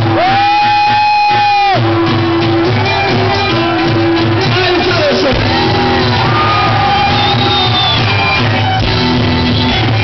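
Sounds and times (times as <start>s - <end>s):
folk-rock band playing loud: 0.0s - 10.0s.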